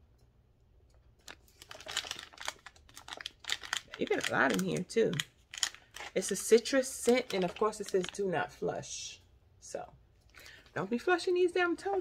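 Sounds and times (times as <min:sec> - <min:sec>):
plastic pouch crinkling: 0:01.2 - 0:08.5.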